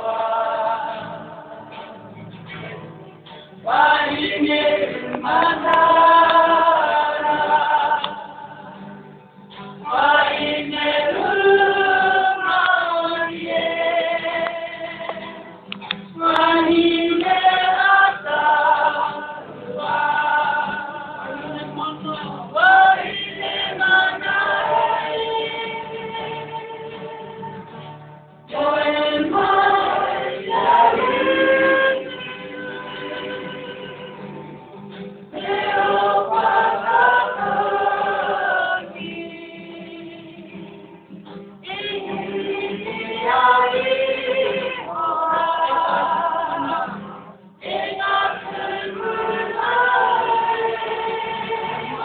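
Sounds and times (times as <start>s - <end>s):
choir singing sustained notes: 0.0s - 1.5s, 3.7s - 8.1s, 9.9s - 15.0s, 22.7s - 27.4s, 28.5s - 34.2s, 35.3s - 40.4s, 41.7s - 52.0s.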